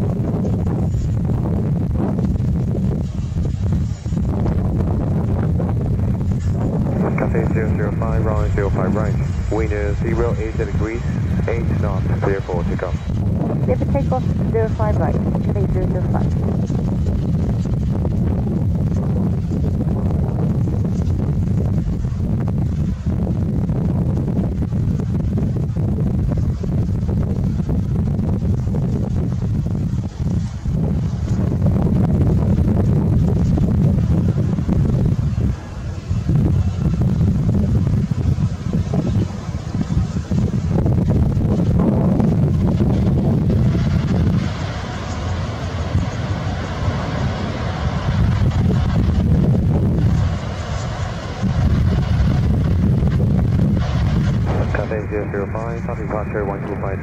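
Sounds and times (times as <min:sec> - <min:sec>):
deep jet engine rumble: 0:00.0 - 0:57.0
hissing jet roar: 0:02.0 - 0:23.5, 0:26.3 - 0:57.0.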